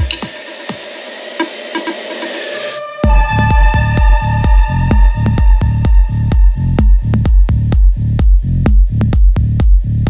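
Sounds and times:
electronic dance beat: 0.0 - 10.0.

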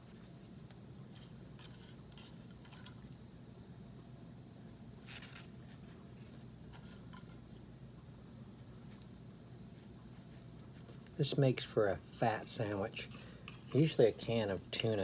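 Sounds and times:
steady low hum: 0.0 - 15.0.

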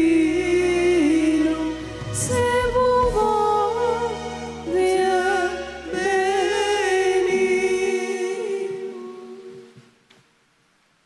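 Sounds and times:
group singing held chord: 3.8 - 9.8.

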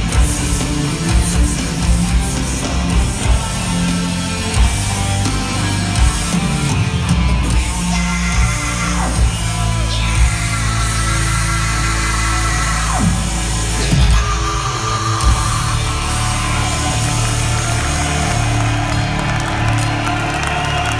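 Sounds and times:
metal band with orchestra playing live: 0.0 - 20.9.

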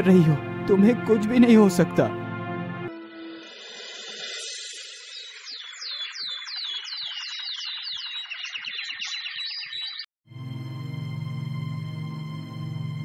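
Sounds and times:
sustained music chord with drone: 0.0 - 3.6, 10.3 - 13.0
birds chirping: 2.9 - 10.1
bird falling whistles: 3.8 - 10.1.

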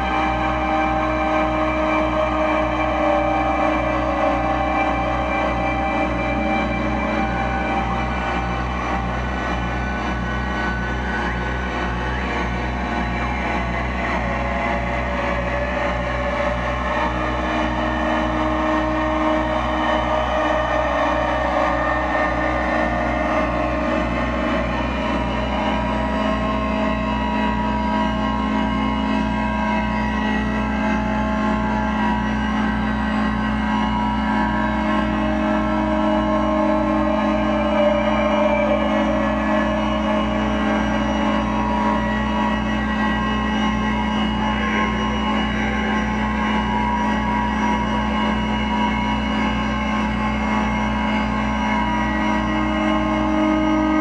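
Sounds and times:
electronic noise drone: 0.0 - 54.0
low pulsing throb: 0.0 - 54.0.

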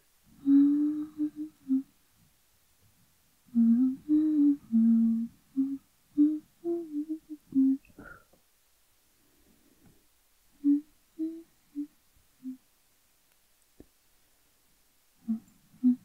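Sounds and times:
woman humming: 0.3 - 1.9, 3.5 - 8.2, 10.6 - 12.6, 15.2 - 16.0.

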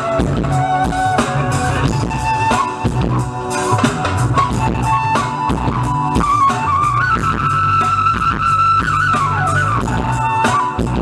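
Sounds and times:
bass line: 0.0 - 11.0
drum beats: 0.0 - 11.0.

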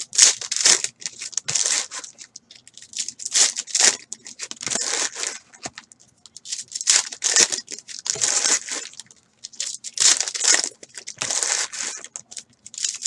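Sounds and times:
foil wrappers crinkling and tearing: 0.0 - 13.0.

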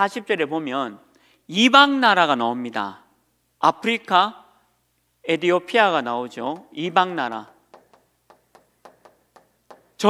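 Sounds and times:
chalk tapping on chalkboard: 7.5 - 10.0.

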